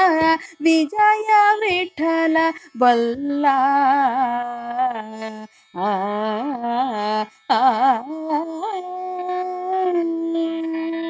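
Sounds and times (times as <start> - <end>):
woman singing devotional song: 0.0 - 11.0.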